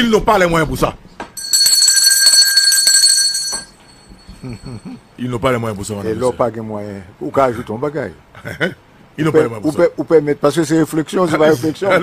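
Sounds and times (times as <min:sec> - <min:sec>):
handbell ringing: 0:01.4 - 0:04.8.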